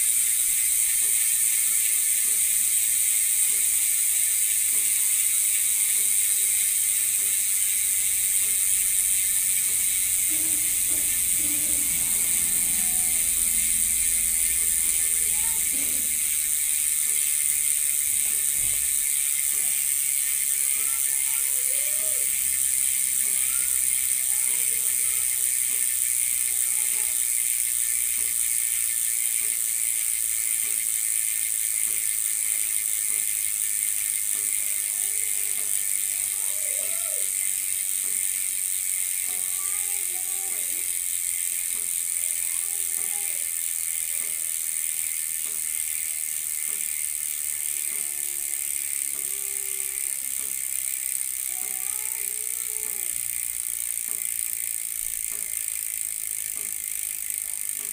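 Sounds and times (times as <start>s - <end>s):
bicycle freehub buzzing: 0.0s - 57.9s.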